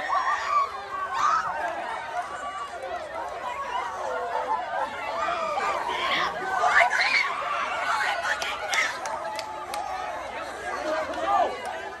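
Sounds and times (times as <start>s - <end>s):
crowd talking and calling out: 0.0s - 12.0s.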